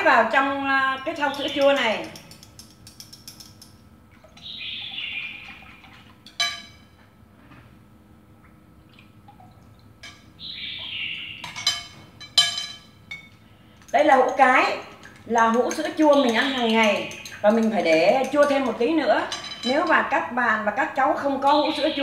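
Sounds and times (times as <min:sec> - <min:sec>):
chopsticks tapping a jar: 0:01.0 - 0:03.8, 0:11.5 - 0:20.0
chopsticks scraping a jar: 0:14.2 - 0:19.4.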